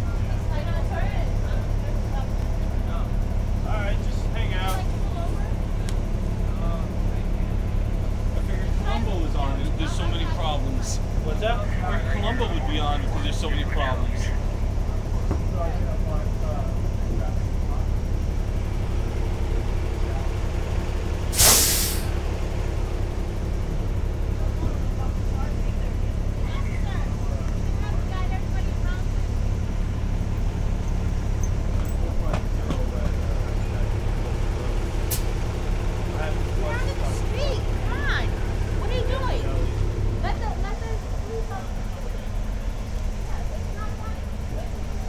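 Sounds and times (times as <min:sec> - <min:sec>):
bus engine rumbling: 0:00.0 - 0:45.0
air brake hiss: 0:21.3 - 0:22.2.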